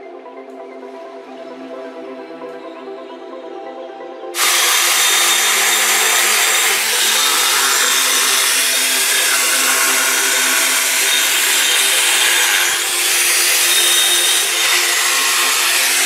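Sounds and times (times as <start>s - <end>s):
angle grinder cutting stone: 4.4s - 16.0s.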